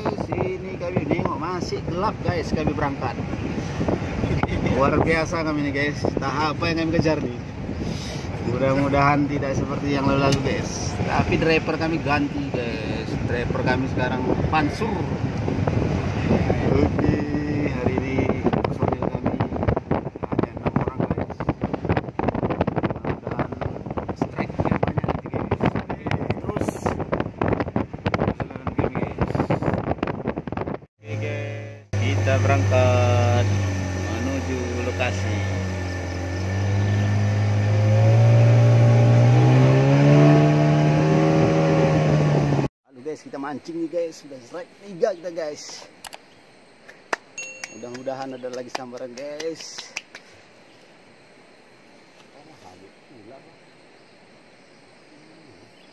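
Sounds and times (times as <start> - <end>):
car engine and tyres rumbling: 0.0 - 43.2
boat engine running: 31.1 - 42.7.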